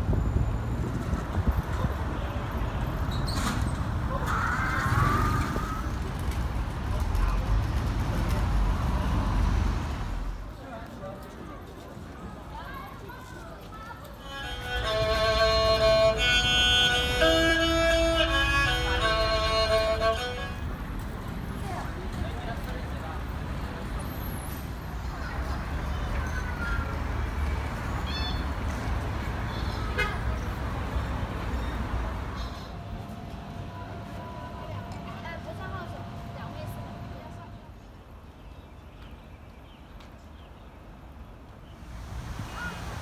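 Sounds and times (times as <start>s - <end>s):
passing vehicles: 0.0s - 38.4s, 40.0s - 43.0s
street traffic rumble: 0.0s - 43.0s.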